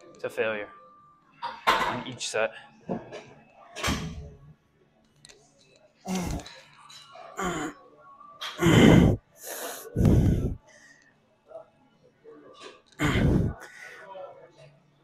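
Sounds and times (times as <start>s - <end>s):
person grunting with strain: 8.6s - 9.2s, 13.0s - 13.6s
person breathing hard: 8.6s - 10.9s, 13.0s - 13.9s
throat clearing: 13.0s - 13.6s.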